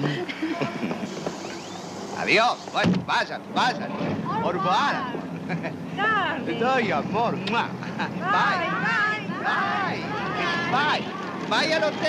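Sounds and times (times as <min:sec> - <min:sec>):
steady background hiss: 0:00.0 - 0:12.0
indistinct voices: 0:06.0 - 0:12.0.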